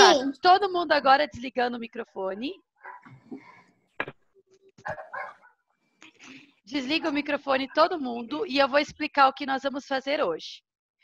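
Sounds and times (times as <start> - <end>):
dog barking over call line: 2.8 - 3.2, 4.8 - 5.6.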